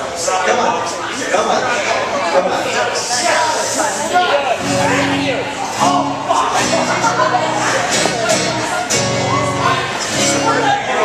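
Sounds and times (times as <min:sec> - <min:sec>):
bar crowd chatter: 0:00.0 - 0:11.0
guitars strumming chords: 0:04.5 - 0:11.0.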